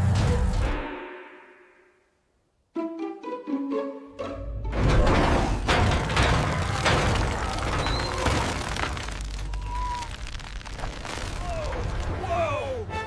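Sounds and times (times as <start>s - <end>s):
sharp cracks and thuds: 5.2s - 12.3s.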